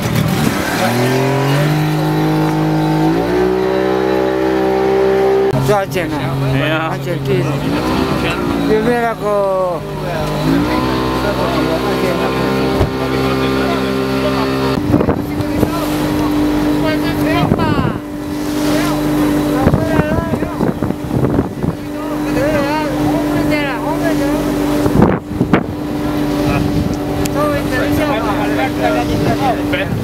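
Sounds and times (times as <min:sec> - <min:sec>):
boat engine humming: 0:00.0 - 0:30.0
voices calling: 0:00.0 - 0:30.0
wind buffeting microphone: 0:12.4 - 0:30.0.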